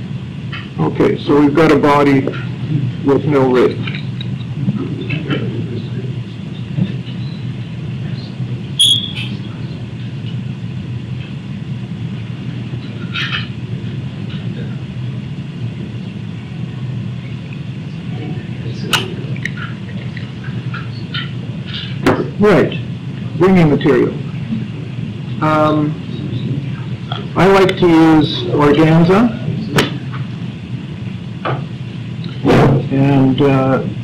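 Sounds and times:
low room hum: 0.0 - 34.0.

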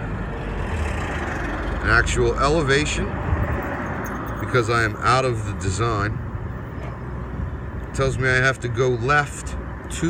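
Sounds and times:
outdoor background rumble with hiss: 0.0 - 10.0.

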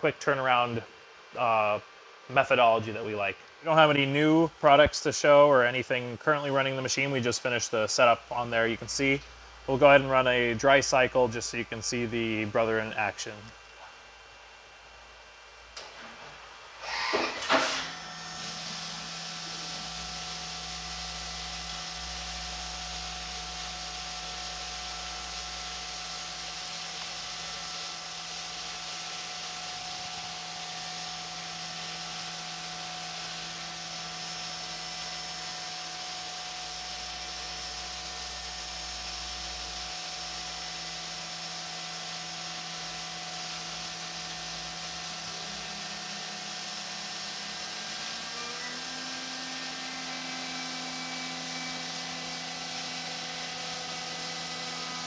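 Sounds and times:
machine hum with held tones: 0.0 - 55.0
coolant spraying hiss: 18.3 - 35.8.

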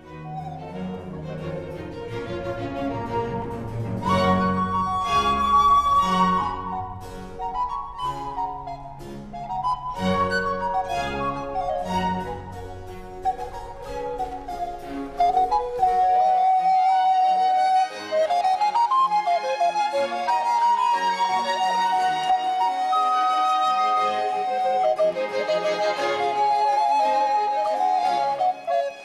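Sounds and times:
bowed strings: 0.0 - 29.0
recorders playing melody: 0.0 - 29.0.

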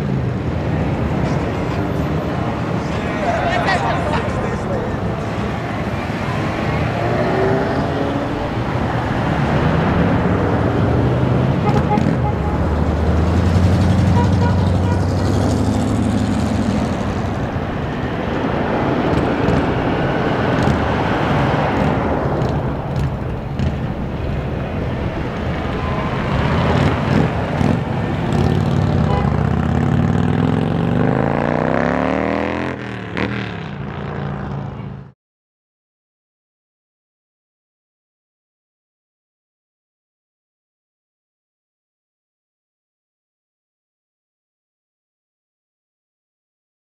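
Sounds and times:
cars driving past: 0.0 - 35.2
tyres on the road: 0.0 - 35.2.

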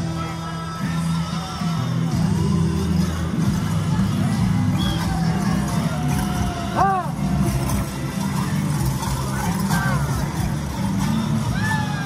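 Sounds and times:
crowd noise: 0.0 - 12.0
parade music with low notes: 0.0 - 12.0.

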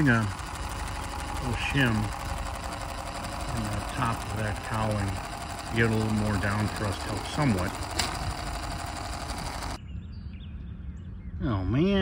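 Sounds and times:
model airplane propeller whirring: 0.0 - 9.8.

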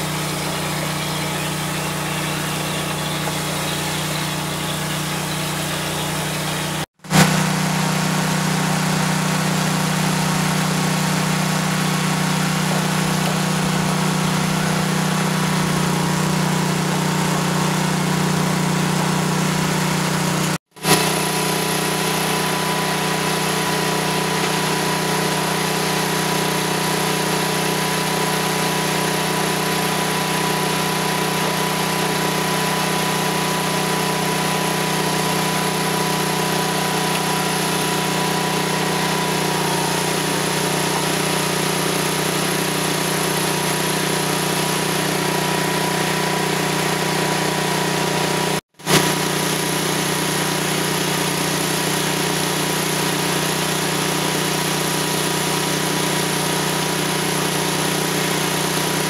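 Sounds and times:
roll forming machine humming: 0.0 - 59.0.

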